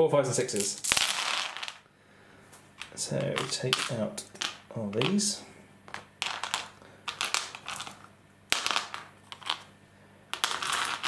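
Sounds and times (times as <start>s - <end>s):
dice clattering on mat: 0.6s - 1.8s, 2.8s - 5.3s, 5.9s - 9.7s, 10.3s - 11.0s.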